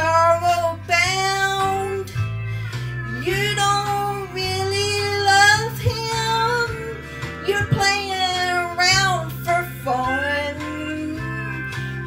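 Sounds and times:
backing track with guitar: 0:00.0 - 0:12.0
woman singing country song: 0:00.0 - 0:12.0.

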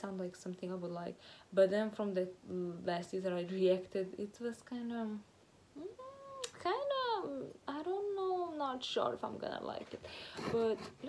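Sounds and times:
woman humming: 0:05.8 - 0:06.6.

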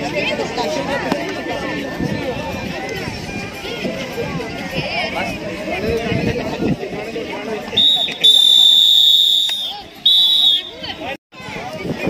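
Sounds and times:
referee's whistle blasts: 0:07.8 - 0:10.9.

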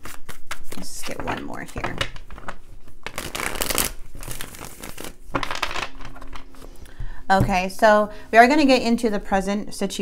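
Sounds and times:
cards riffle-shuffled: 0:00.0 - 0:01.4, 0:02.2 - 0:06.4.

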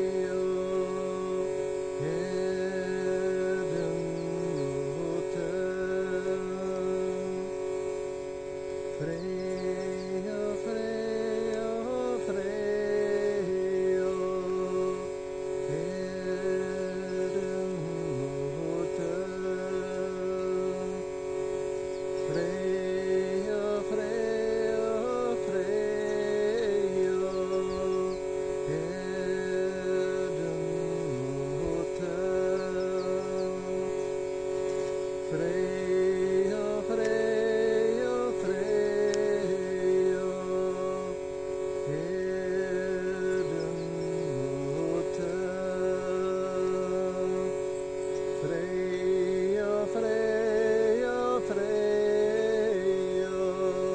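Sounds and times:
man chanting wordlessly: 0:00.0 - 0:53.9
steady drone: 0:00.0 - 0:53.9.

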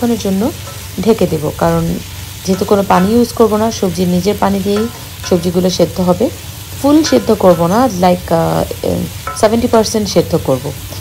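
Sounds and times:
vegetables sizzling in a wok: 0:00.0 - 0:11.0.

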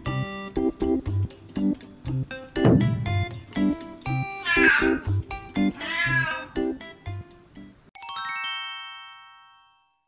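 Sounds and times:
music of plucked notes and bass: 0:00.0 - 0:04.4
cat meowing: 0:04.4 - 0:06.7.

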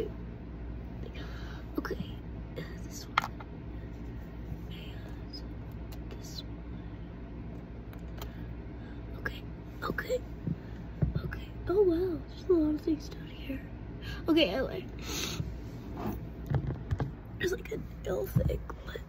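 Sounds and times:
low steady room hum: 0:00.0 - 0:19.0
soft breathy whispering: 0:01.0 - 0:03.1, 0:03.9 - 0:07.1.

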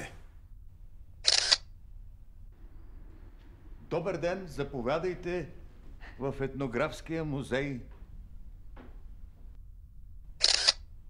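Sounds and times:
camera shutter click: 0:01.2 - 0:01.7, 0:10.4 - 0:10.9.

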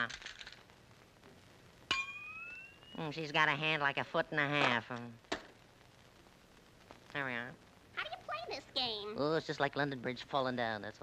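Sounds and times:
metallic clang rising in pitch: 0:01.9 - 0:03.0.

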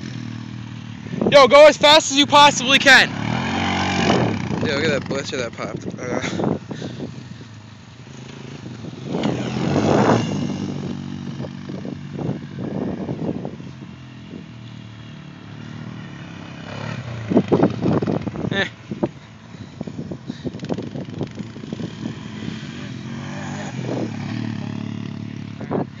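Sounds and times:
quad bike engine revving: 0:00.0 - 0:26.0.

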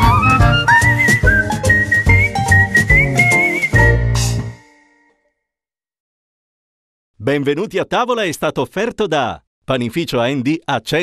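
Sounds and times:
upbeat music beat and bass: 0:00.0 - 0:04.6
whistled tune: 0:00.0 - 0:05.2.

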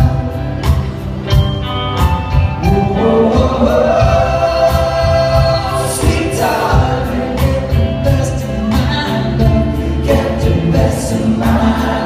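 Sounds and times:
drums: 0:00.0 - 0:12.0
keyboards: 0:00.0 - 0:12.0.

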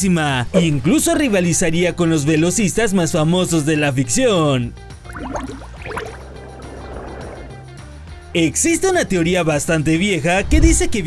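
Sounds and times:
background music with low bass: 0:00.0 - 0:11.0
swooshing transition effect: 0:05.4 - 0:07.8.

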